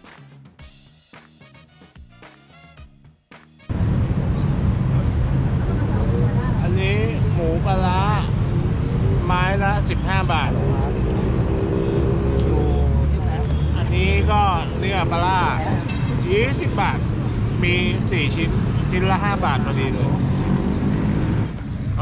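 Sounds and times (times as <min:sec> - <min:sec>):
low rumble of traffic: 0:03.7 - 0:22.0
voices talking: 0:05.5 - 0:20.3.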